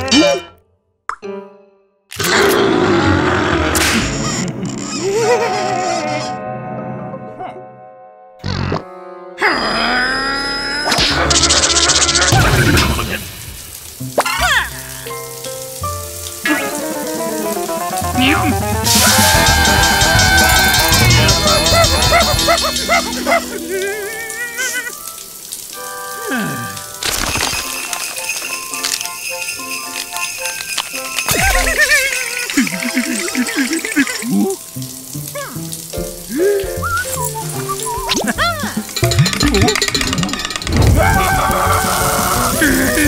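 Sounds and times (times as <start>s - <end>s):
shower running: 11.2s - 43.0s
cartoon music: 16.4s - 25.3s, 29.6s - 43.0s
comic sound effects: 18.0s - 24.8s.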